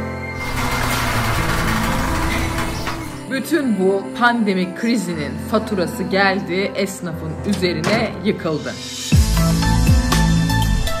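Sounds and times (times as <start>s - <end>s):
metal shutter rattling down: 0.4s - 3.3s.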